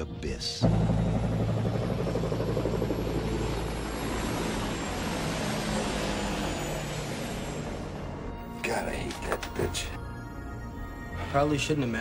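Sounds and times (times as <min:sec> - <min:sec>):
helicopter rotor and turbine: 0:00.6 - 0:08.4.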